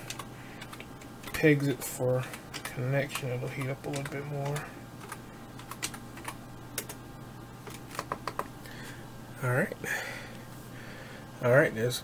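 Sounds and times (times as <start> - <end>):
steady low hum: 0.0 - 12.0
keyboard key clicks: 7.7 - 8.5.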